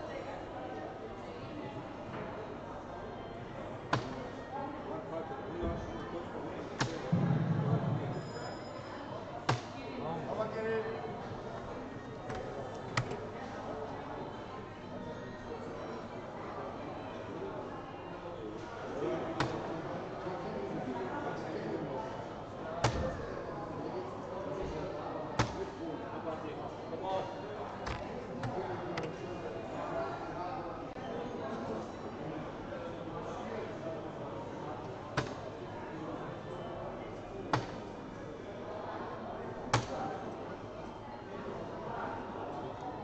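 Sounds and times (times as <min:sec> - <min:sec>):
murmur of voices: 0:00.0 - 0:43.0
dart hitting electronic dartboard: 0:25.4 - 0:25.6.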